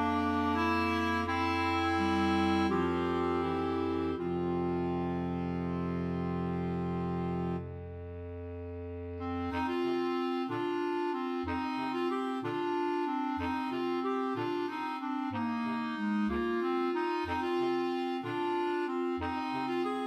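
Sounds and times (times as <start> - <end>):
clarinet choir playing: 0.0 - 7.6, 9.5 - 20.0.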